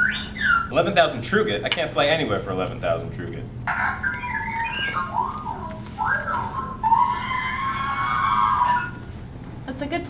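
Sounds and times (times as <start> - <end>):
robot whistles and chirps: 0.0 - 0.8, 3.7 - 9.1.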